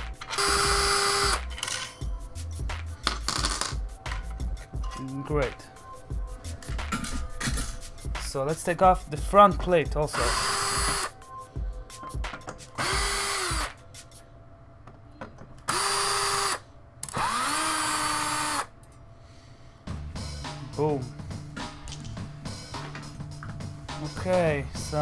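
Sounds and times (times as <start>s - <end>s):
background music: 0.0s - 25.0s
power screwdriver running: 0.3s - 1.5s, 10.2s - 11.1s, 12.8s - 13.7s, 15.7s - 18.7s.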